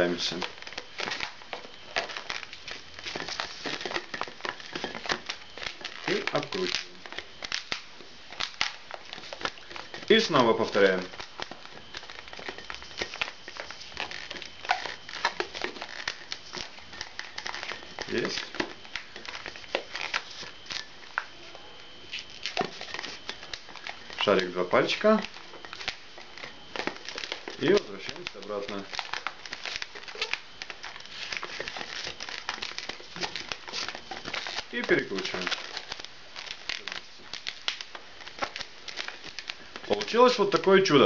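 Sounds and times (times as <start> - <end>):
balloon rubbing and squeaking: 0.0 - 41.0.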